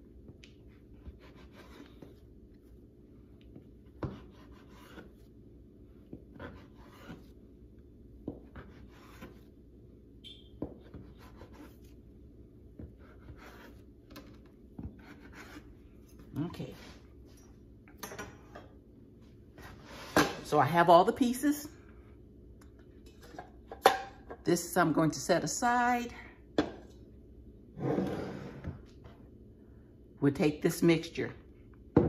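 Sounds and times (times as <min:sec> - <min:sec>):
low steady hum: 0:00.0 - 0:32.0
knife scraping dough: 0:00.6 - 0:02.3, 0:03.8 - 0:05.3, 0:06.0 - 0:07.5, 0:08.3 - 0:09.6, 0:10.7 - 0:12.0, 0:12.8 - 0:17.0.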